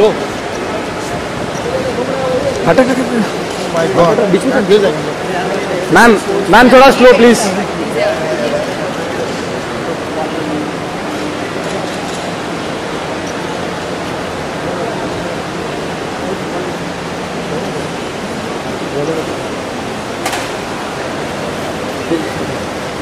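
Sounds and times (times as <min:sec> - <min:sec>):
crowd hubbub: 0:00.0 - 0:23.0.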